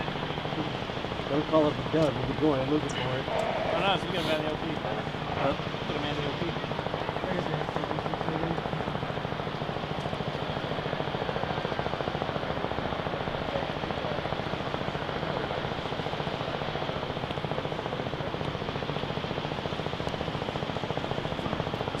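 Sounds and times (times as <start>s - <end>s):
mechanical drone with flutter: 0.0s - 22.0s.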